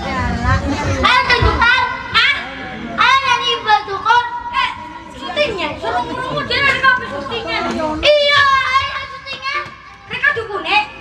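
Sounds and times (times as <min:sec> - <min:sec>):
boys talking through pa system: 0:00.0 - 0:11.0.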